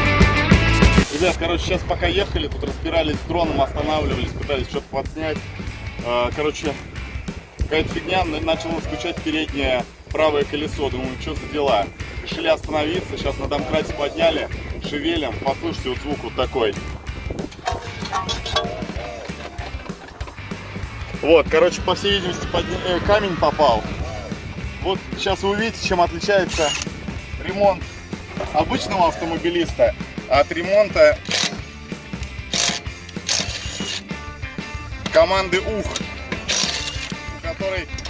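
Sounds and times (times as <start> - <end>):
wheel scraping and clicking: 17.4 - 21.3, 32.5 - 34.1, 36.5 - 37.2
cordless power wrench spinning: 26.5 - 26.9, 31.2 - 31.6, 32.5 - 34.0, 36.5 - 37.2
wheel squeaks: 26.5 - 26.9, 32.5 - 34.0, 36.5 - 37.3
fast mechanical rattle: 31.2 - 31.6, 32.5 - 34.0, 36.5 - 37.2.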